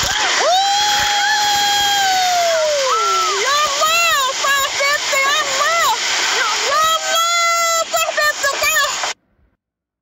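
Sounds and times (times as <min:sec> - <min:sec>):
floodwater rushing: 0:00.0 - 0:09.2
high-pitched voice calling out: 0:03.2 - 0:09.0.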